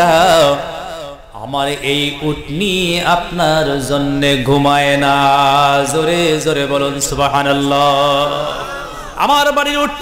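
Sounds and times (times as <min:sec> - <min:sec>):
man chanting a sermon: 0:00.0 - 0:10.0.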